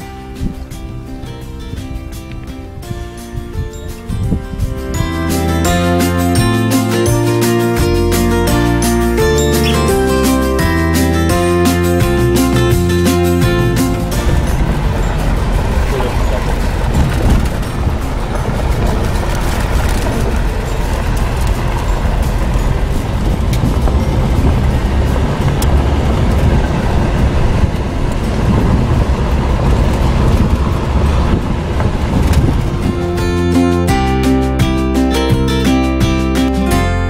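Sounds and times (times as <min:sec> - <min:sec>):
guitar music: 0:00.0 - 0:37.0
vehicle interior road rumble: 0:00.0 - 0:37.0.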